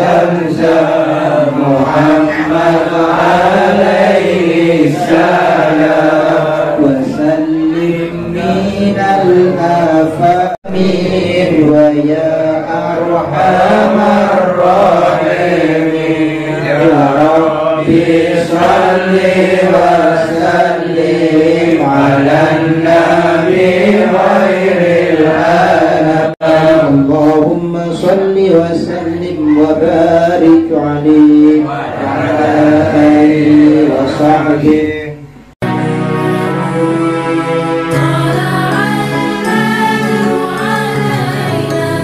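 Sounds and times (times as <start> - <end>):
men chanting together: 0.0 - 35.0
voice on a microphone: 0.0 - 42.0.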